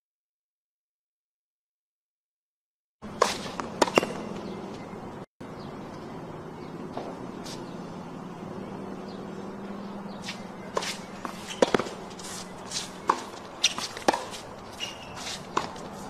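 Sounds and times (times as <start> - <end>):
tennis ball strikes and bounces: 3.0 - 5.0, 6.8 - 7.7, 9.8 - 16.0
shoe scuffs on court: 3.1 - 4.8, 7.0 - 7.7, 10.1 - 16.0.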